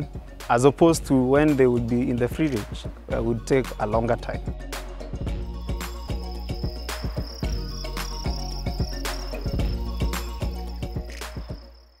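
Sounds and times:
background music with steady beat: 0.0s - 12.0s
crickets chirping: 5.2s - 12.0s.

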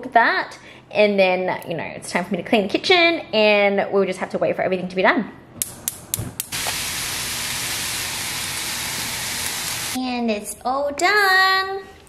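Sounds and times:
chicken sizzling in frying pan: 6.5s - 10.0s.

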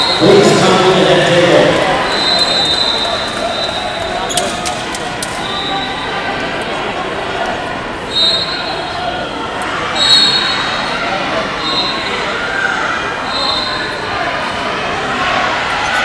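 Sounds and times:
crowd chatter: 0.0s - 16.0s
shrill whistle blasts: 2.0s - 4.0s, 5.4s - 6.1s, 8.1s - 8.8s, 10.0s - 10.8s, 11.6s - 12.2s, 13.3s - 14.0s.

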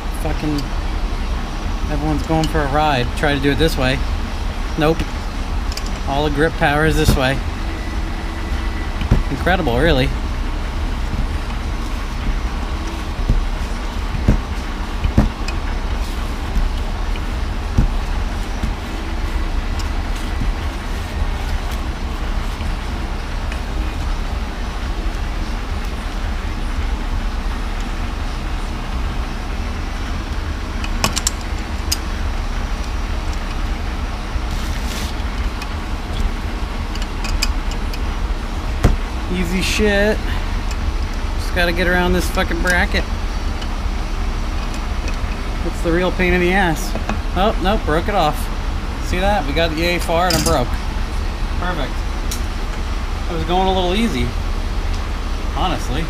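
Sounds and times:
low background rumble: 0.0s - 56.0s.

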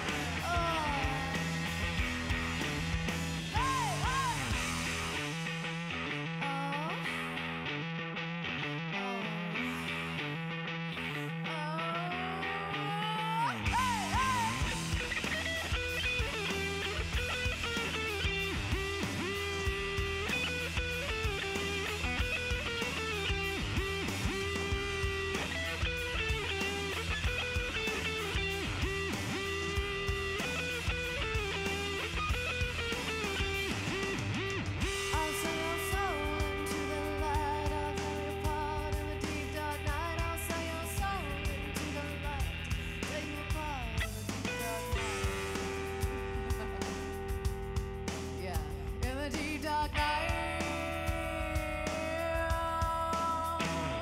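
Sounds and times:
woman singing: 0.0s - 1.8s, 3.5s - 4.7s, 6.4s - 7.5s, 8.9s - 9.7s, 11.1s - 15.2s, 35.0s - 45.2s, 48.3s - 54.0s
live rock band playing: 0.0s - 11.3s, 13.4s - 54.0s
electric guitar: 0.0s - 54.0s.

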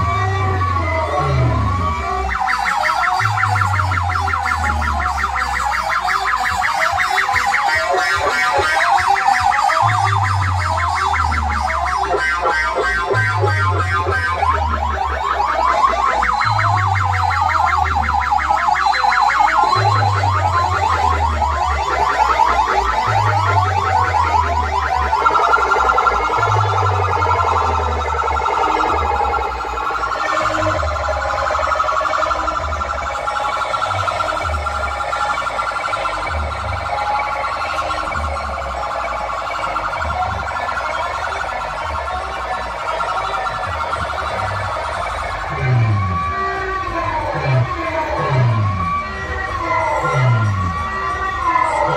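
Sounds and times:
electronic siren-like warble: 0.0s - 51.9s.

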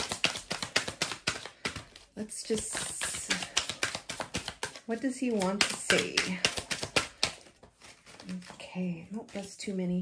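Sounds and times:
cards being shuffled: 0.0s - 9.8s.

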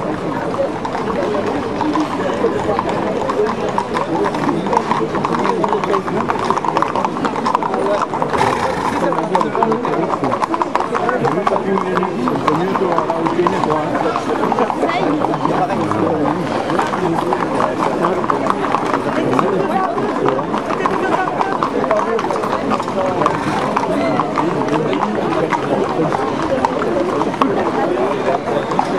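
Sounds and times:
crowd chatter: 0.0s - 28.9s
horse hooves on pavement: 0.0s - 28.9s
people talking: 0.0s - 28.9s.

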